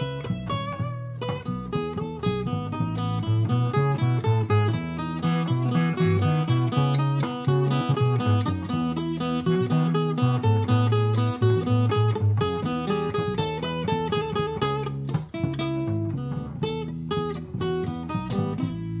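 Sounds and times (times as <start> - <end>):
fingerpicked acoustic guitar: 0.0 - 19.0
plucked electric cello: 0.0 - 19.0.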